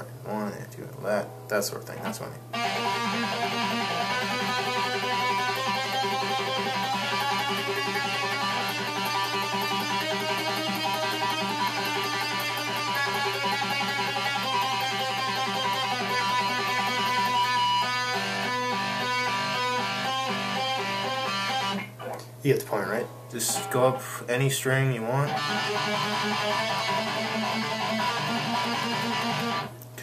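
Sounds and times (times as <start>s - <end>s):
electric guitar picking notes: 2.5s - 29.8s.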